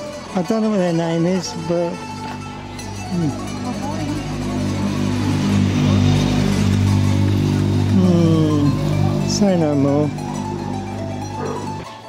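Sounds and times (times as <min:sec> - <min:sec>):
motorcycle engine running: 0:00.0 - 0:11.9
music from bars: 0:00.0 - 0:12.0
voices: 0:00.0 - 0:12.0.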